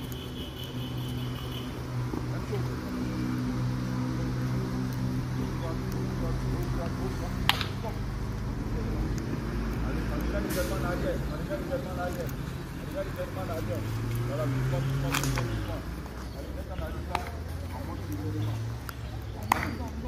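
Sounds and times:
people calling and chattering: 0.0s - 20.0s.

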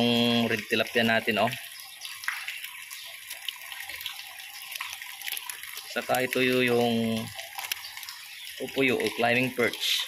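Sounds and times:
small splashes: 0.0s - 10.0s
water running: 0.0s - 10.0s.

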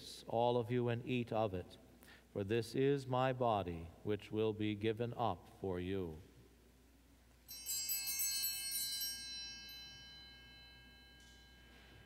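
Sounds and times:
altar bells ringing: 7.4s - 12.0s.

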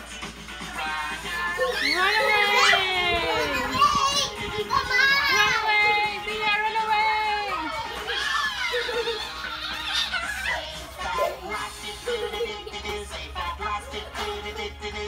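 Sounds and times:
children's song: 0.0s - 15.0s
children calling and squealing: 1.3s - 14.3s.

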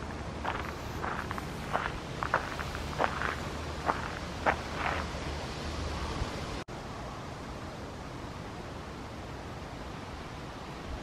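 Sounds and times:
crunchy footsteps walking: 0.0s - 5.2s.

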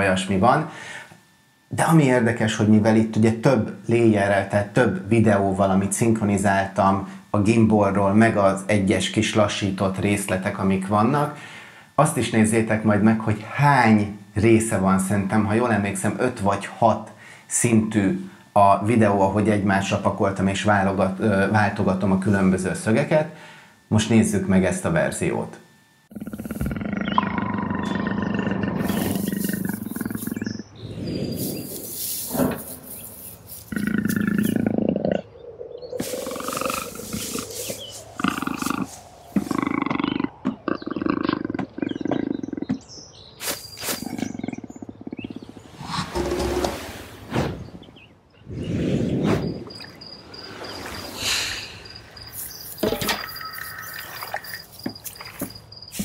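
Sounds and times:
rainforest ambience: 0.0s - 47.2s, 49.4s - 56.0s
high pulsing insect-like chirp: 26.0s - 45.6s, 48.3s - 56.0s
big cat roars: 26.1s - 31.2s, 38.2s - 42.8s
animal calls: 26.1s - 46.8s.

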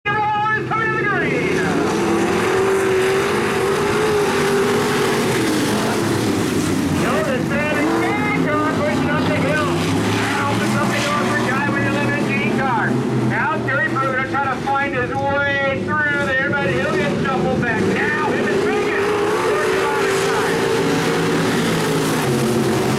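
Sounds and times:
stock car engines racing: 0.1s - 22.9s
person talking: 7.0s - 20.6s.

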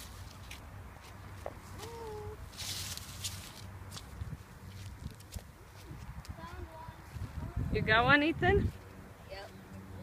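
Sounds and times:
plants rustling: 0.0s - 6.1s
footsteps in dirt: 2.7s - 7.4s.

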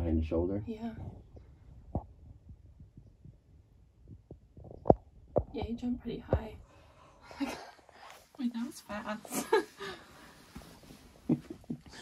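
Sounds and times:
faint low thumps: 0.8s - 7.0s.

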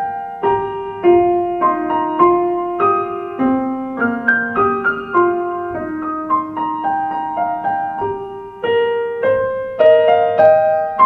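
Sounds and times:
solo piano playing: 0.0s - 11.0s.

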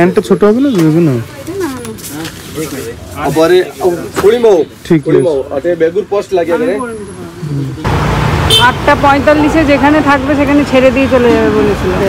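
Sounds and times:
street traffic rumble: 0.0s - 12.0s.

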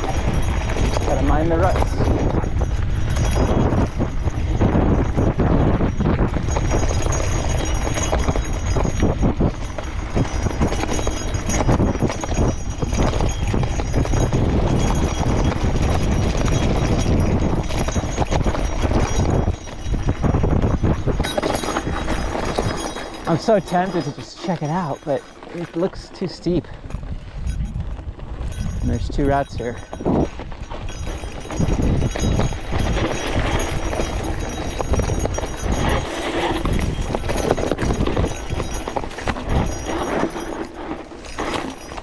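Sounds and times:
bike frame rattling: 0.0s - 42.0s
bike tyres crunching on gravel: 0.0s - 42.0s.

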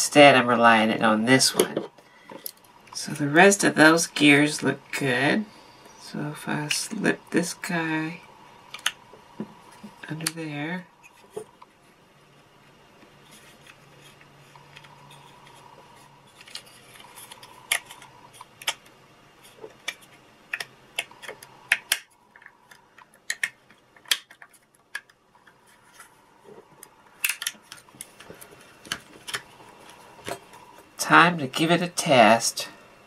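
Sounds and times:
plastic parts clicking and tapping: 8.7s - 9.0s, 16.3s - 26.1s, 26.7s - 30.6s.

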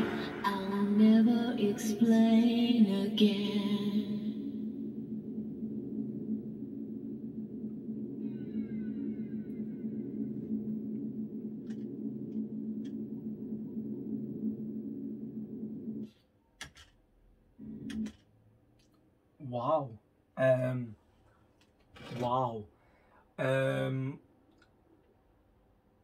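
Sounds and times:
high sweeping shimmer: 0.0s - 4.5s
low synthesizer drone: 0.0s - 16.1s
faint clicks: 10.4s - 13.2s.

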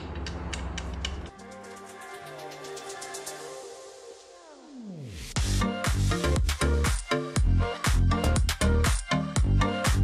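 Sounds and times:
electronic music with ticking beat: 5.4s - 10.0s.

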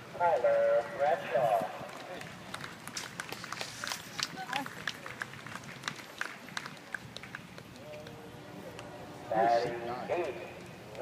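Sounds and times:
scattered handclaps: 1.8s - 8.9s.

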